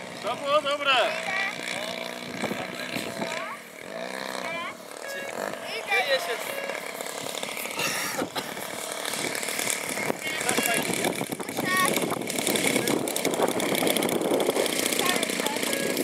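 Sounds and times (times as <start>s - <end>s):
model plane engine: 0.0s - 16.0s.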